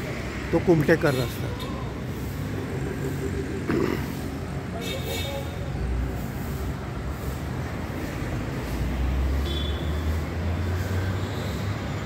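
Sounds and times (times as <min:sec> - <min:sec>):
vehicle engine rumble on road: 0:00.0 - 0:12.0.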